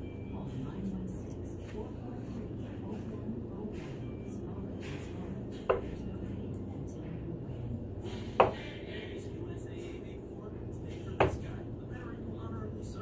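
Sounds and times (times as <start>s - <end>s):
low background hum: 0.0s - 13.0s
darts hitting dartboard: 8.2s - 8.7s.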